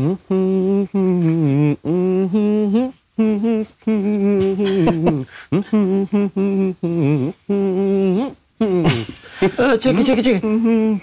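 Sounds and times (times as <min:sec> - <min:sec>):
man humming a melody: 0:00.0 - 0:09.6, 0:10.3 - 0:11.0.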